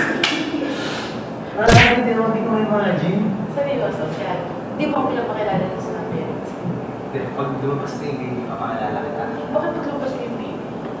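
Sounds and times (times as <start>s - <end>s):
heavy thump: 1.6s - 2.0s
short sharp knock: 1.7s - 2.0s.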